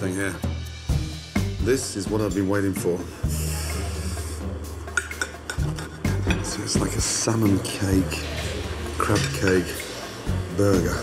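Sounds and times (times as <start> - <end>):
low music drone: 0.0 - 11.0
cutlery clinking on a plate: 9.1 - 9.9.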